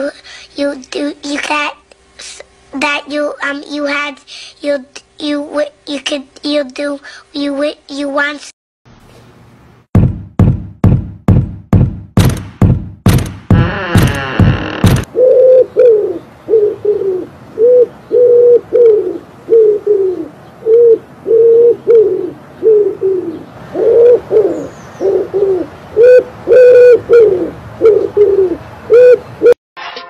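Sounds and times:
pigeon cooing: 15.1 - 29.6.

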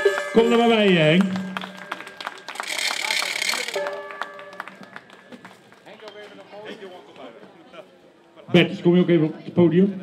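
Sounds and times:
crowd applause: 0.0 - 6.6
low crowd voices: 0.2 - 10.0.

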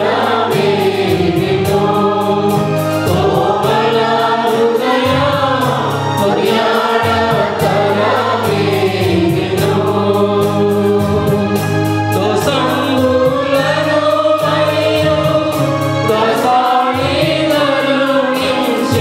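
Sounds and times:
electronic keyboard accompaniment: 0.0 - 19.0
mixed choir singing: 0.0 - 19.0.

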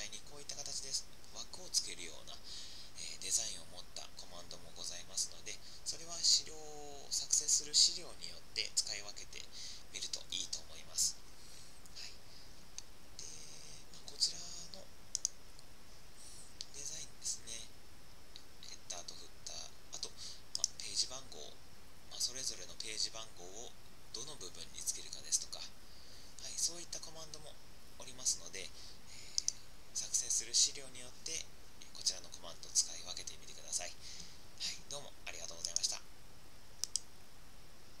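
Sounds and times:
faint steady hiss: 0.0 - 38.0
computer mouse clicks: 15.1 - 15.4, 20.5 - 20.8, 29.3 - 29.6, 36.8 - 37.1.

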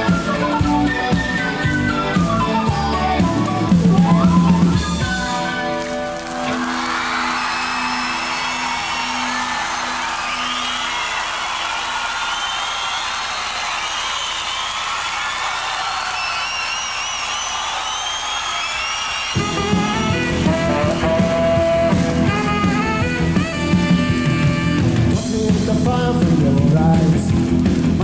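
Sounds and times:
whistles: 0.0 - 5.6, 6.6 - 21.2
rock band playing: 0.0 - 11.3, 19.3 - 28.0
audience cheering and applauding: 0.0 - 26.2.

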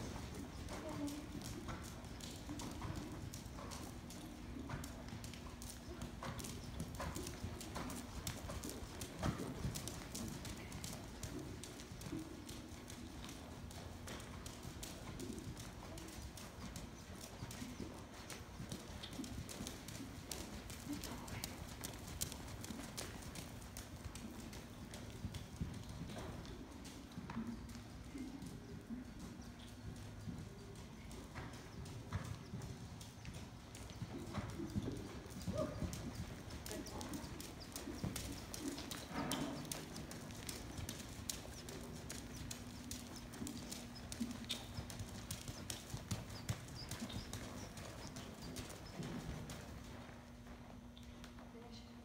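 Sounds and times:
horse hoofbeats trotting on sand: 0.0 - 52.0.

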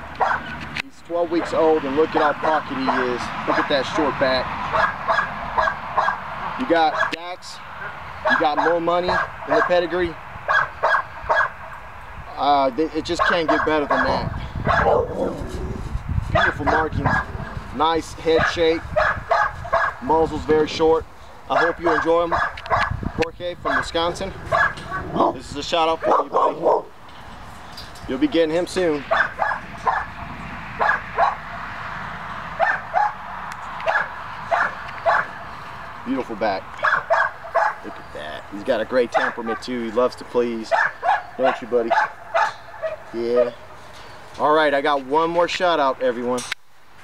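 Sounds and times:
dog barking: 0.2 - 0.5, 4.7 - 6.2, 6.9 - 7.2, 7.8 - 9.8, 10.5 - 11.6, 13.2 - 15.4, 16.4 - 17.4, 18.4 - 20.0, 21.5 - 23.0, 24.5 - 25.4, 26.0 - 26.9, 29.1 - 30.2, 30.8 - 31.4, 32.6 - 33.2, 33.8 - 35.4, 36.8 - 38.0, 40.7 - 43.6.

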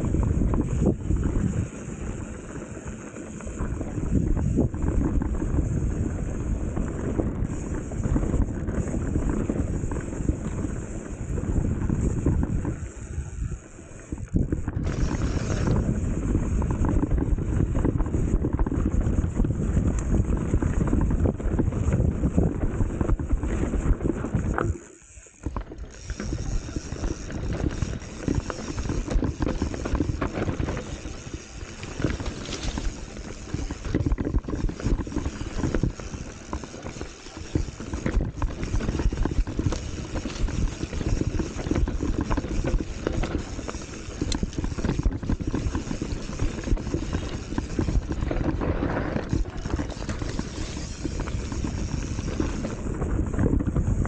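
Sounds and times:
bike rattling: 0.0 - 54.0.

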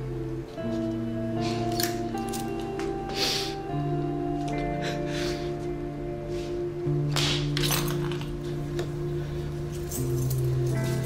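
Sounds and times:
low sustained music chords: 0.0 - 11.0
soft handling clinks: 9.7 - 11.0.

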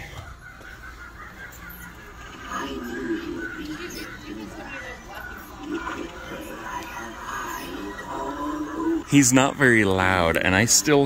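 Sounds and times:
animatronic laughter: 0.0 - 11.0
animatronic soundtrack: 0.8 - 11.0.

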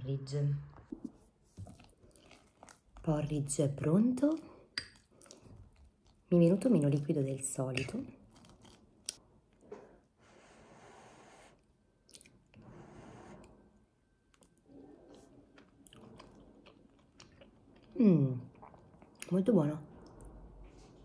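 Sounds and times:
person chewing: 1.0 - 3.0, 4.7 - 6.3, 8.2 - 9.2, 12.1 - 12.4, 14.3 - 19.3.

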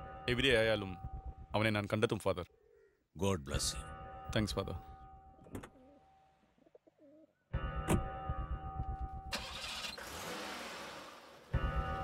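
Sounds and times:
faint wavering bird calls: 2.5 - 3.1.

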